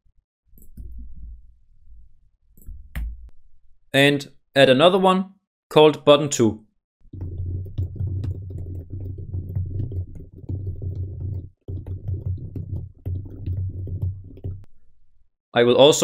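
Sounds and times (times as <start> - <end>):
computer keyboard typing: 7.1 - 14.7.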